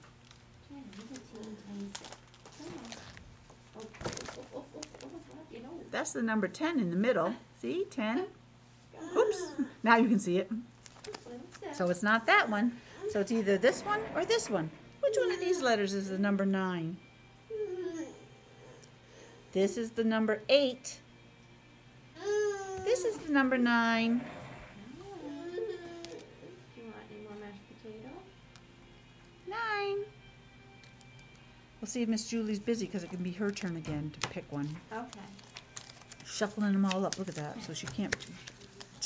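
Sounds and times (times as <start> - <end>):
laminated cards rustling: 0.0 - 5.4, 10.8 - 12.0, 33.0 - 39.0
child whining: 9.0 - 9.7, 17.5 - 18.8, 22.2 - 23.2, 25.0 - 26.6.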